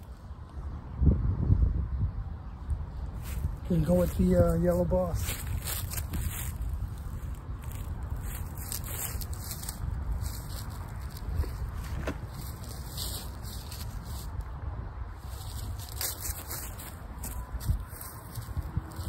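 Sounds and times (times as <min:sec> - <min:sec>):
wind buffeting microphone: 0:00.0 - 0:19.0
footsteps on grass and leaves: 0:03.1 - 0:19.0.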